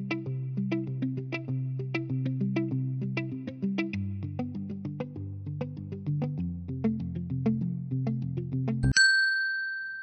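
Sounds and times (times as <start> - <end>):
bright ringing ding: 8.8 - 10.0.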